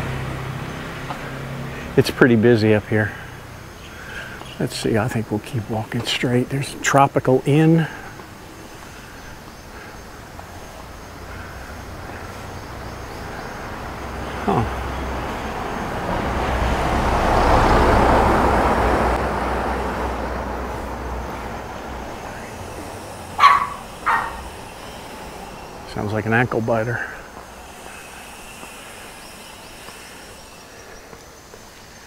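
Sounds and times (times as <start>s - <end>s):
vehicle passing: 0.0s - 32.0s
small dog barking: 23.4s - 24.5s.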